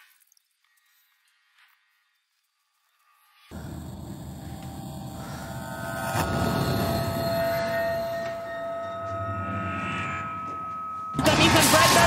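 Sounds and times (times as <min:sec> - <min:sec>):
horror soundtrack drone: 0:03.4 - 0:12.0.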